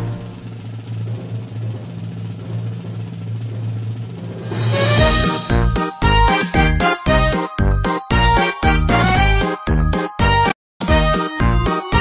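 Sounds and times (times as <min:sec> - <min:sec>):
rhythmic music with heavy beat: 0:04.7 - 0:12.0.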